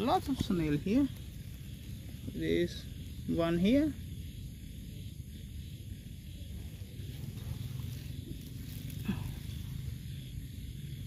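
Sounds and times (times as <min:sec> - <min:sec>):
soft high hiss: 0:00.0 - 0:11.0.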